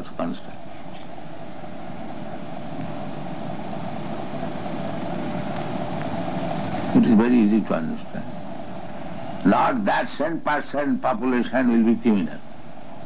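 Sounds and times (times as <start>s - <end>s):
film soundtrack hum and hiss: 0.0s - 13.0s.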